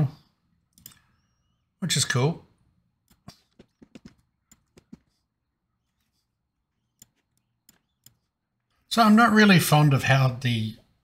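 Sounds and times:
computer mouse clicks: 0.7 - 1.2, 3.0 - 5.1, 6.9 - 8.3.

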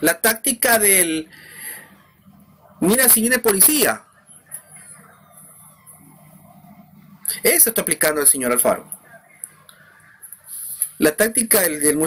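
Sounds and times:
low steady hum: 0.0 - 12.0
faint siren wailing: 1.2 - 11.8.

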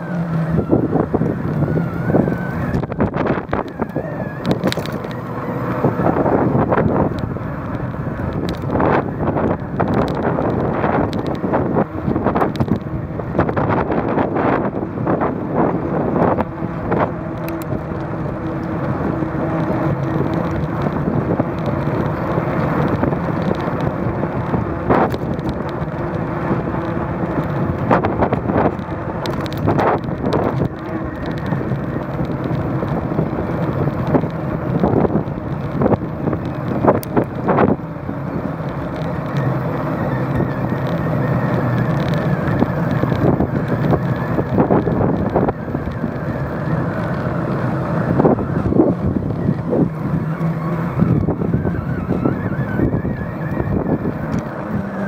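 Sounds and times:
bicycle tyres rumbling on asphalt: 0.0 - 55.0
bike clicks and rattles: 0.0 - 55.0
wind on microphone: 0.0 - 55.0.

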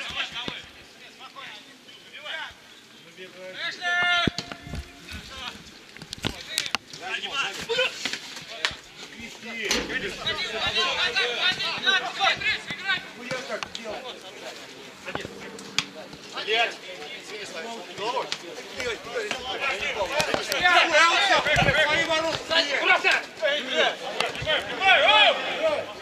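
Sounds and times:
men calling and shouting: 0.0 - 26.0.

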